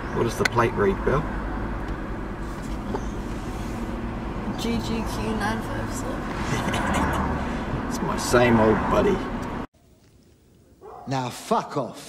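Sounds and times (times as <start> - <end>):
vehicle engine rumble: 0.0 - 10.9
road noise: 0.0 - 12.0.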